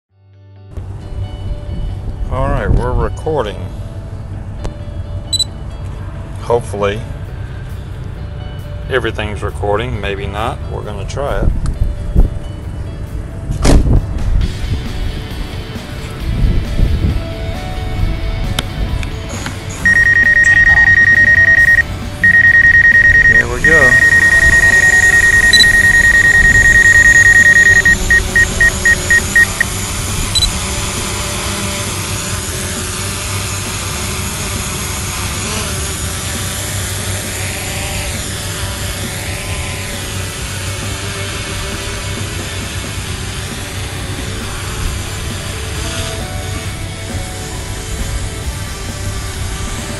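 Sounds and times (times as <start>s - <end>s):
short high electronic beep: 19.9s - 29.6s
drone propellers humming: 19.9s - 41.5s.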